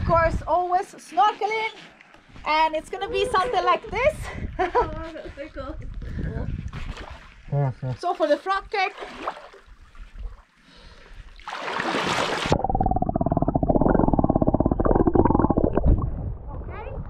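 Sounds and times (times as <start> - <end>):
water splashing: 6.7 - 7.4, 8.0 - 10.4, 11.4 - 16.6
crackling bubbles: 12.4 - 17.0
muffled underwater rumble: 12.6 - 17.0.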